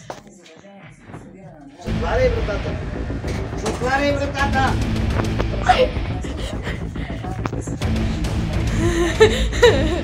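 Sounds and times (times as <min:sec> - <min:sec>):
loud voices: 0:01.9 - 0:10.0.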